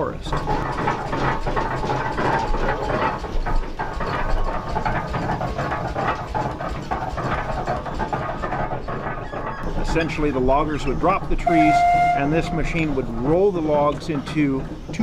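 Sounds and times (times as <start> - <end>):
clatter of gears and machinery: 0.0 - 15.0
steam engine low rumble: 0.0 - 15.0.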